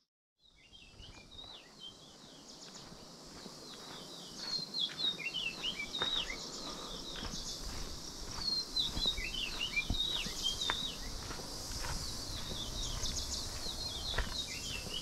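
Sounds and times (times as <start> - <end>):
footsteps on dirt track: 0.4 - 15.0
birds chirping and whistling: 0.5 - 3.0, 3.7 - 15.0
high background hiss: 0.6 - 15.0.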